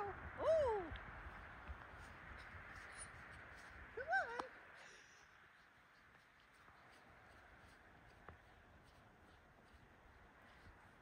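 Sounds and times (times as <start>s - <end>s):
footsteps crunching in snow: 1.2s - 4.9s, 5.5s - 11.0s.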